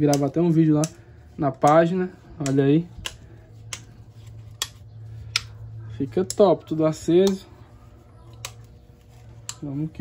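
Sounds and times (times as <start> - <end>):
steady low hum: 0.0 - 10.0
small switches clicking: 1.6 - 4.0.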